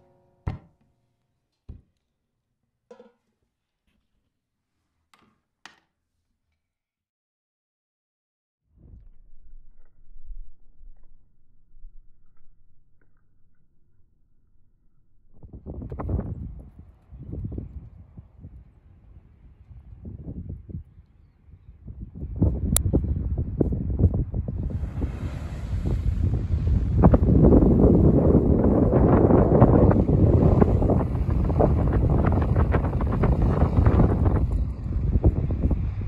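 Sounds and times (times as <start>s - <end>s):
wind buffeting microphone: 15.4s - 36.0s.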